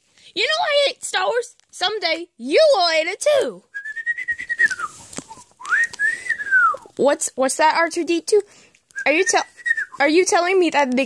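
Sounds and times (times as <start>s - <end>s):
person whistling sliding note: 3.8s - 6.8s.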